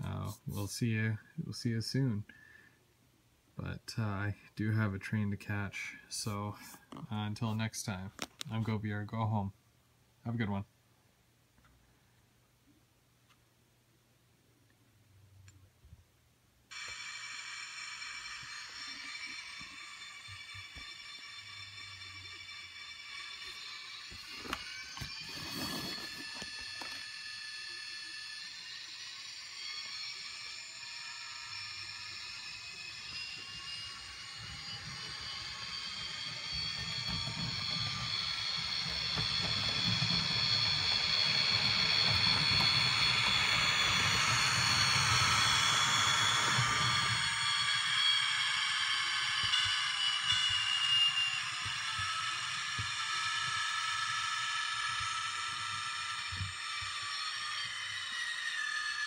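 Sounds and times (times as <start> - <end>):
model train motor whine: 16.7 - 59.0.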